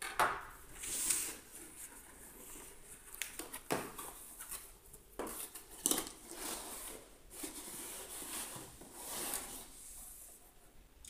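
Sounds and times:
cardboard box scraping and rustling: 0:05.2 - 0:10.4.

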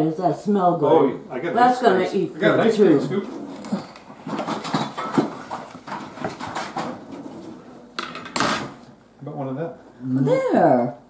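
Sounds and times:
utensil clattering on plates: 0:03.6 - 0:08.8.

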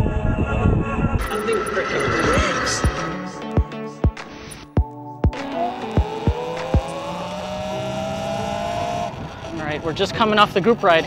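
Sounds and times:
electric motorbike motor whining: 0:05.6 - 0:10.0.

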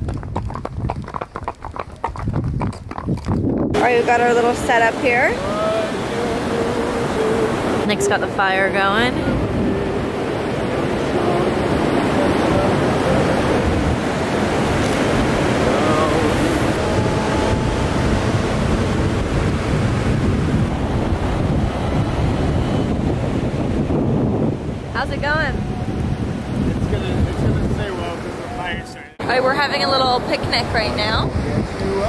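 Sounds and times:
wind buffeting microphone: 0:00.0 - 0:32.0
ocean surf washing onto beach: 0:03.8 - 0:32.0.

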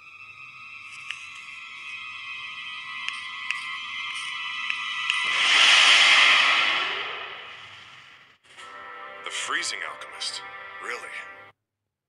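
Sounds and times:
sustained music tones: 0:00.0 - 0:07.9, 0:08.5 - 0:11.5
rushing whoosh: 0:05.1 - 0:08.2.

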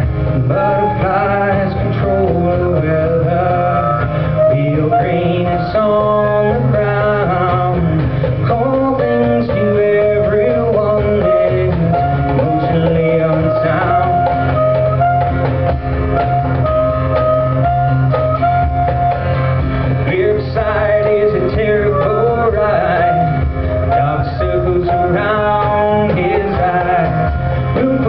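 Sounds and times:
man singing: 0:00.0 - 0:14.9, 0:19.9 - 0:28.0
drum kit: 0:00.0 - 0:28.0
strummed guitar: 0:00.0 - 0:28.0.

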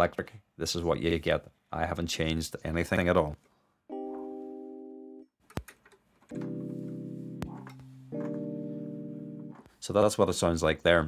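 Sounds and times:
electric piano chords: 0:03.9 - 0:05.3, 0:06.3 - 0:09.7.

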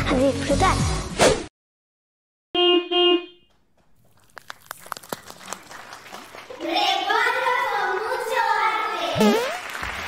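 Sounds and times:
horn-like honks: 0:02.6 - 0:03.5.

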